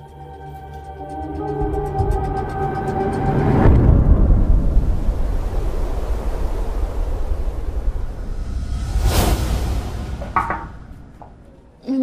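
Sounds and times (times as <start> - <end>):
low rushing rumble: 3.3 - 11.7.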